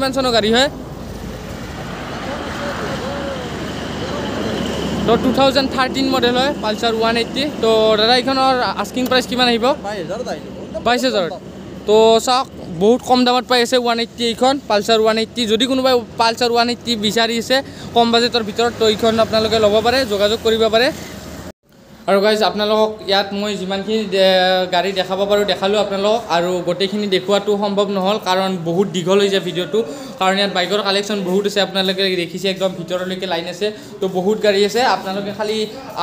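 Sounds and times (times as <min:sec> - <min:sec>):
man speaking: 0:00.0 - 0:00.8, 0:02.2 - 0:21.0, 0:22.1 - 0:36.0
faint background noise: 0:00.0 - 0:36.0
road traffic rumble: 0:00.0 - 0:36.0
faint voices talking: 0:02.1 - 0:09.0.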